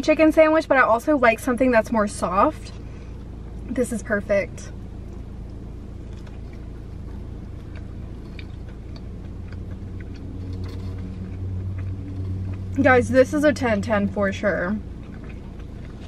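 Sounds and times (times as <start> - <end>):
chewing: 4.7 - 16.0.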